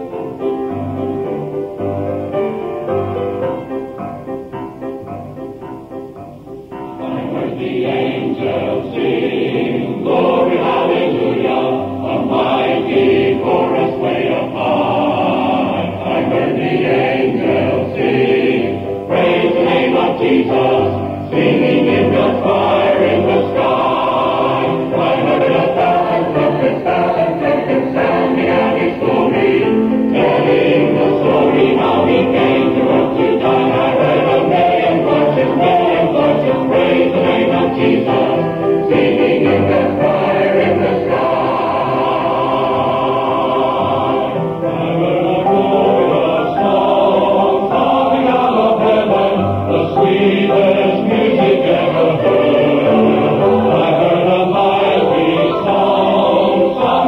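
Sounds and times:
muffled choir singing: 0:00.0 - 0:57.0.

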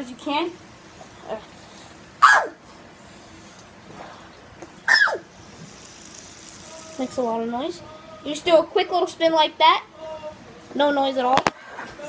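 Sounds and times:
fidget spinner whirring: 0:00.0 - 0:09.4.

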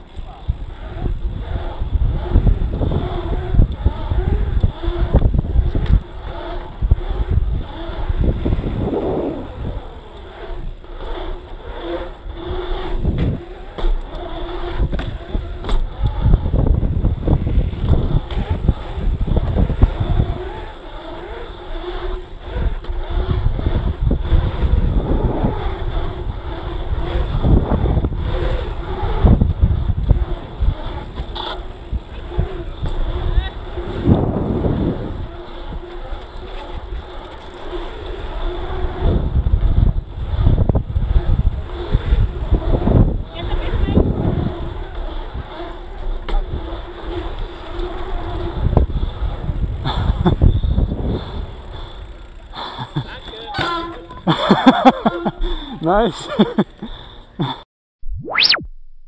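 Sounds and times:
low rumble: 0:00.0 - 0:11.0
wind buffeting microphone: 0:00.0 - 0:55.8.

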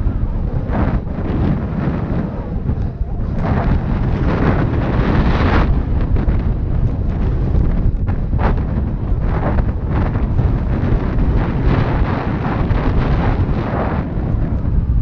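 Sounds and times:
tyres rumbling over ground: 0:00.0 - 0:15.0
wind buffeting microphone: 0:00.0 - 0:15.0.

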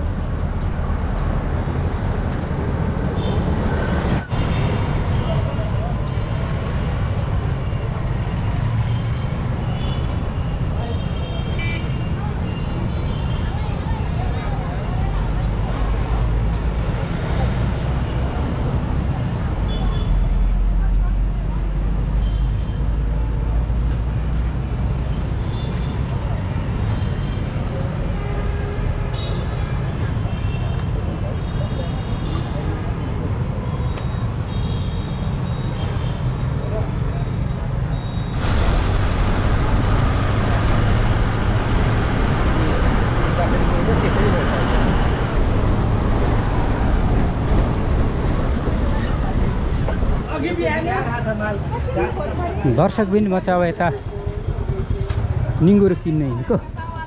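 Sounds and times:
road noise inside moving bus: 0:00.0 - 0:57.0
passing motorbikes: 0:35.2 - 0:57.0
people's voices: 0:40.4 - 0:57.0.

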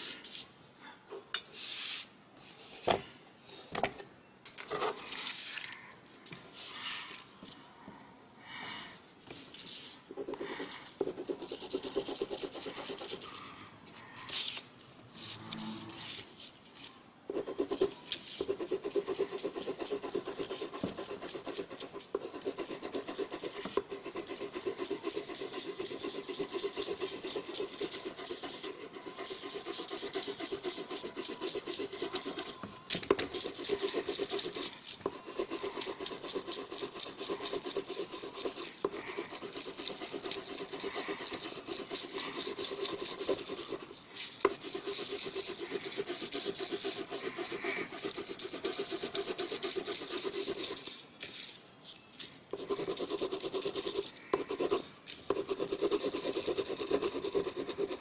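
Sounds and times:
pencil scratching on paper: 0:10.2 - 0:13.4, 0:17.3 - 0:51.0, 0:52.6 - 0:58.0.

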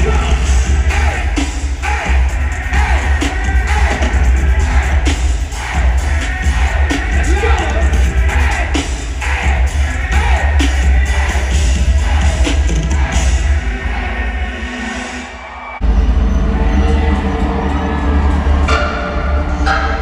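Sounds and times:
crowd noise: 0:00.0 - 0:20.0
loud live concert music: 0:00.0 - 0:20.0.

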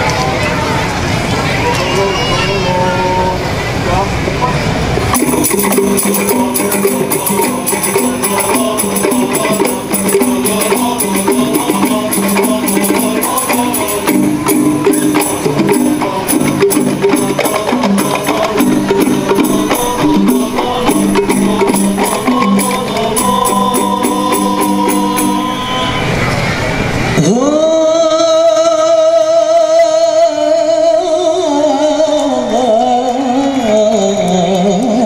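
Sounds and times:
crowd murmur: 0:00.0 - 0:27.6
traffic rumble: 0:00.0 - 0:29.1
hand drums: 0:05.1 - 0:25.9
jingling percussion: 0:05.1 - 0:26.4
melodic line: 0:05.2 - 0:26.1
person singing long notes: 0:05.2 - 0:26.3.

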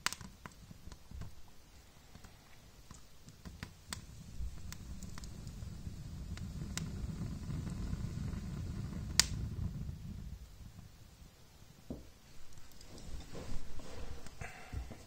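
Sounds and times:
fire crackling and popping: 0:00.0 - 0:15.0.

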